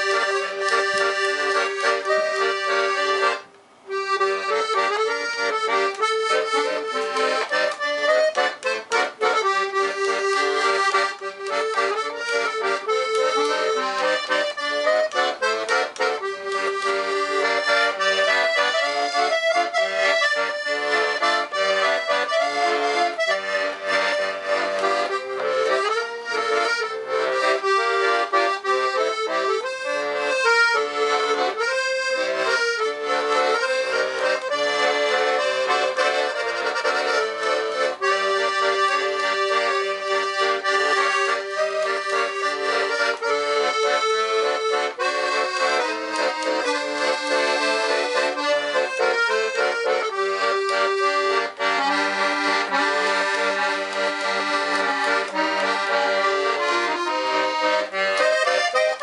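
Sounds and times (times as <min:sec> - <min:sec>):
accordion playing a tune: 0:00.0 - 0:59.0.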